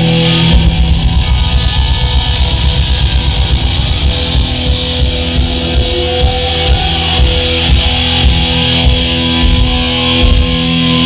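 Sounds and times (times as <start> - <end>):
drums pounding rapidly: 0.0 - 11.0
heavy metal band playing loudly: 0.0 - 11.0.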